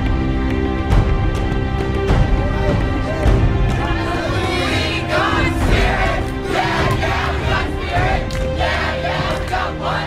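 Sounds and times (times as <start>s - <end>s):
background music: 0.0s - 10.0s
people shouting and cheering: 2.2s - 10.0s.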